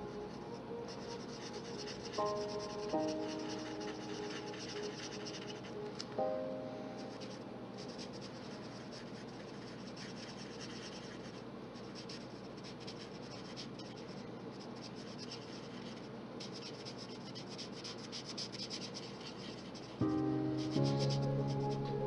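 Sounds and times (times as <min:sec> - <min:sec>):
marker scratching on paper: 0:00.9 - 0:05.7, 0:07.1 - 0:21.3.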